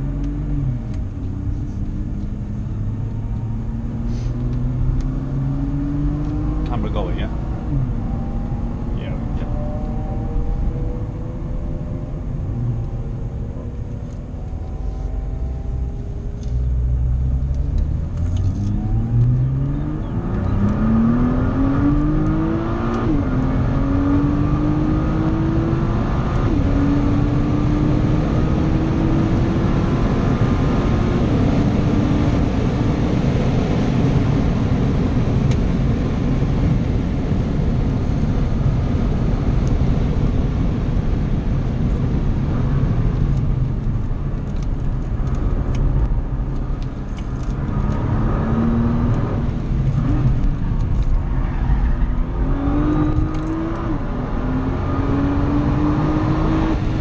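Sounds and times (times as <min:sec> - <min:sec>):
car engine accelerating: 0:00.0 - 0:57.0
road and wind noise: 0:00.0 - 0:57.0.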